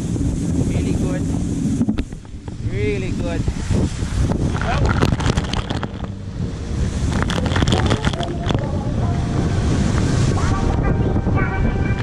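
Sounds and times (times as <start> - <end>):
water spray splashing camera: 0.0 - 10.8
wakeboard skimming water: 0.0 - 12.0
wind buffeting microphone: 0.0 - 12.0.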